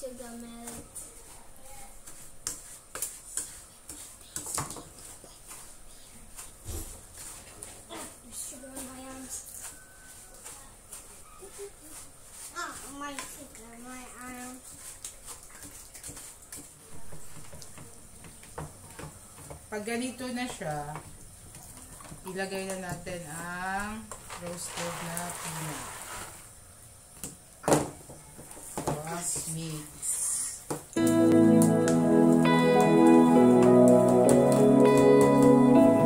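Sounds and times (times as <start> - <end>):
wooden spatula scraping pan: 0.7 - 13.6, 23.2 - 26.5.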